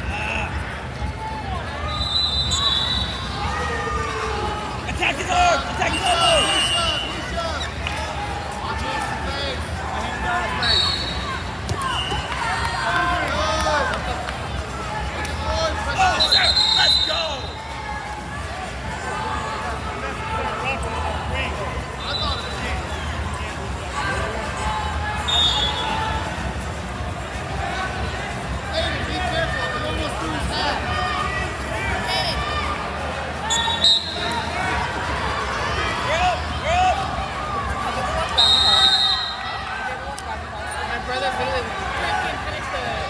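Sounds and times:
people shouting in echoing arena: 0.0 - 14.0.

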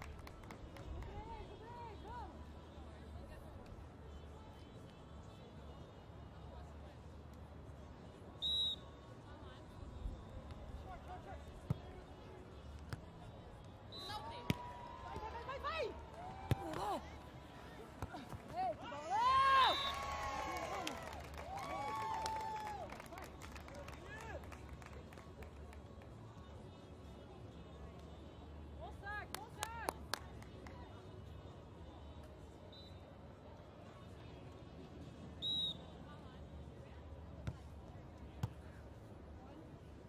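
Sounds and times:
people clapping: 0.0 - 1.2, 19.6 - 25.8, 29.3 - 30.8
crowd cheering: 14.3 - 17.1, 18.8 - 24.4.

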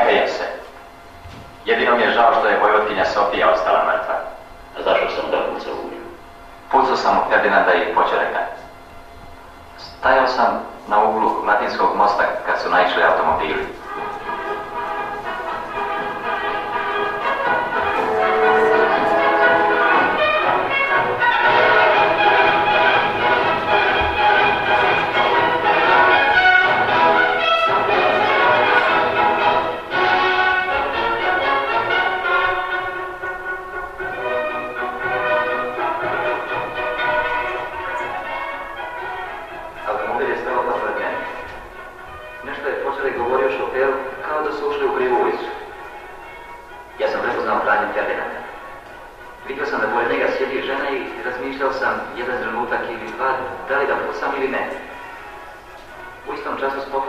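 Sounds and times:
voices: 9.8 - 20.8
film soundtrack music: 12.3 - 57.0.

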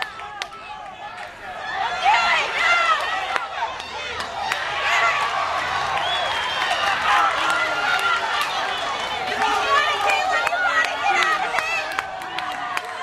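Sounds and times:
spectators shouting and yelling: 0.0 - 13.0.

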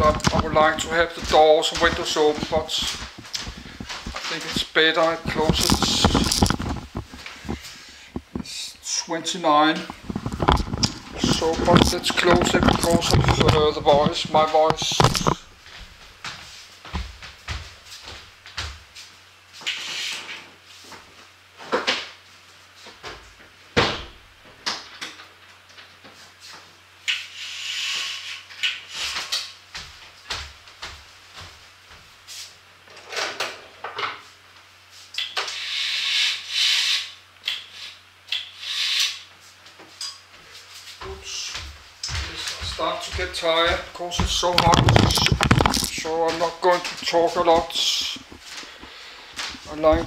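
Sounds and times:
faint steady hum: 0.0 - 50.0.

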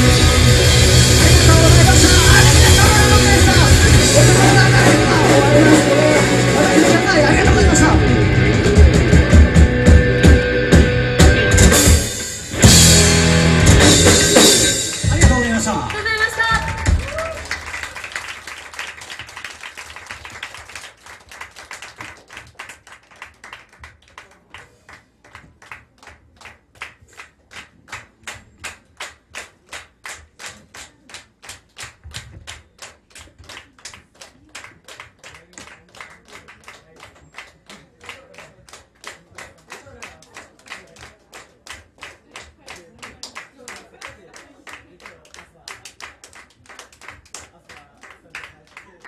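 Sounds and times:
crowd clapping in unison: 0.0 - 8.1, 8.7 - 9.6, 13.8 - 49.0.

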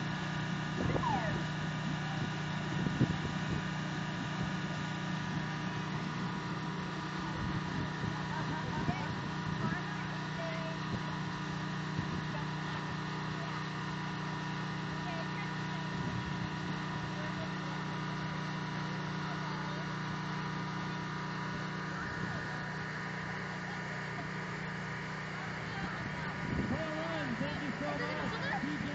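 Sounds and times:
motor drone: 0.0 - 28.9.

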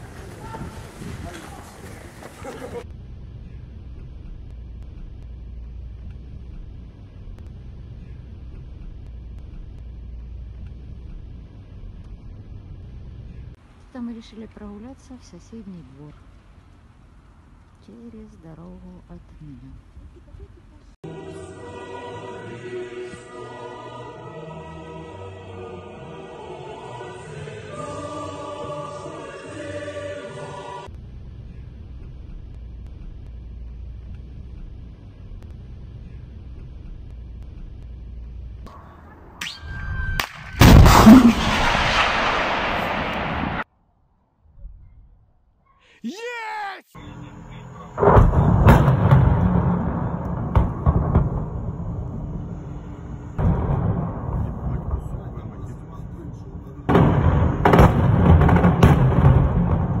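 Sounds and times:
steady low rumble: 0.0 - 21.0, 30.8 - 39.4, 47.0 - 60.0
gunfire cracks: 40.2 - 43.7
heavy blasts with long rumble: 40.6 - 43.7, 47.9 - 60.0.

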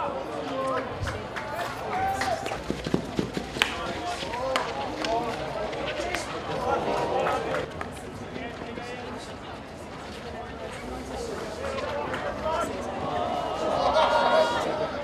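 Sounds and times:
players shouting: 1.6 - 7.7, 11.7 - 15.0.

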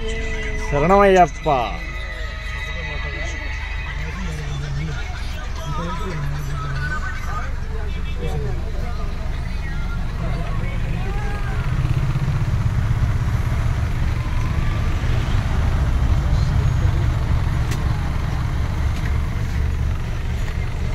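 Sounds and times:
bus engine rumble: 0.0 - 20.9
faint voices: 0.0 - 20.9.

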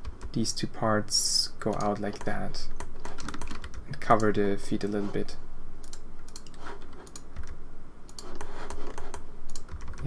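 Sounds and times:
computer keyboard keys clicking: 3.0 - 4.4, 5.9 - 10.0.

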